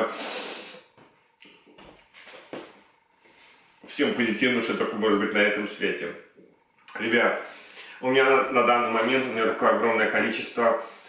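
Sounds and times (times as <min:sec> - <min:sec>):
person breathing out: 0:00.0 - 0:00.8, 0:07.4 - 0:08.0.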